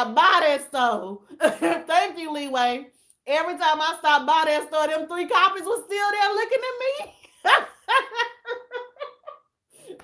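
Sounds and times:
woman laughing: 1.3s - 2.0s, 7.0s - 10.0s.

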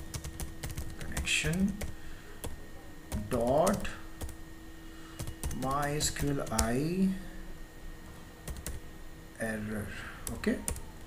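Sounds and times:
keyboard typing: 0.0s - 4.4s, 5.2s - 6.8s, 8.4s - 8.8s.

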